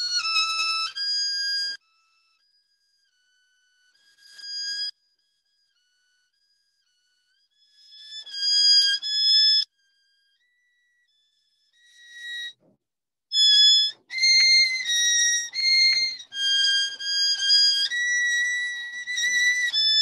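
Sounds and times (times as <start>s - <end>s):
violin playing: 13.9s - 20.0s.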